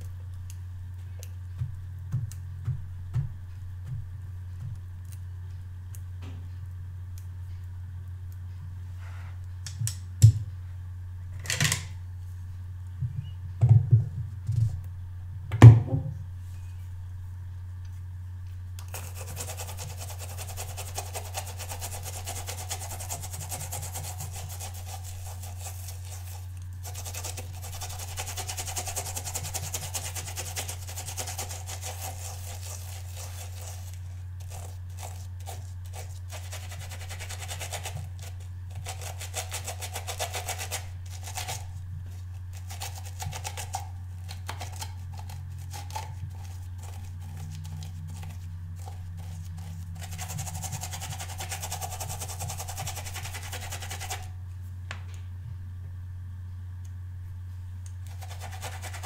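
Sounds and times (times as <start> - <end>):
steady low hum: 0.0 - 59.0
brush scrubbing on silicone pad: 18.9 - 54.3, 58.1 - 59.0.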